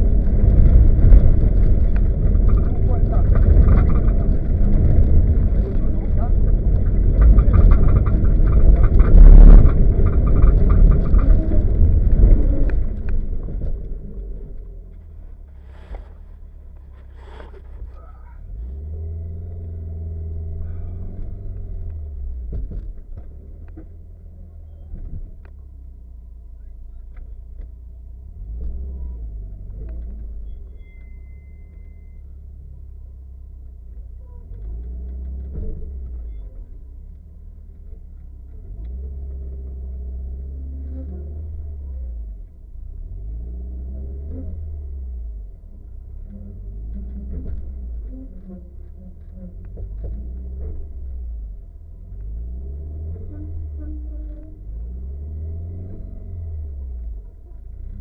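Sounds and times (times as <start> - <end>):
car engine from inside cabin: 0.0 - 58.0.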